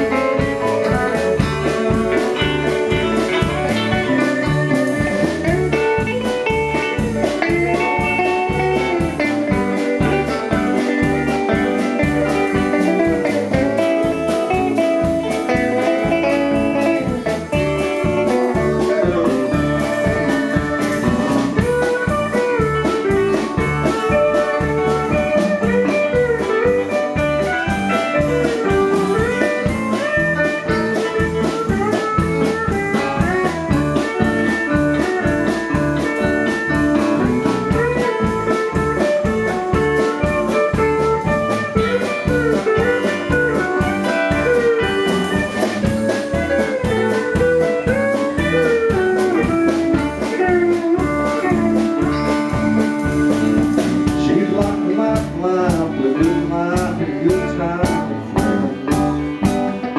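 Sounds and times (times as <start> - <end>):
acoustic guitar: 0.0 - 59.9
bass: 0.0 - 59.9
drums steady beat: 0.0 - 59.9
electric guitar lead: 0.0 - 59.9
pedal steel guitar gliding notes: 0.0 - 59.9.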